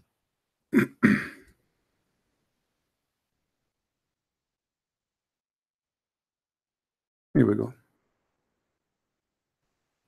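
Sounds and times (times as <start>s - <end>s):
man clearing his throat: 0.8s - 1.5s.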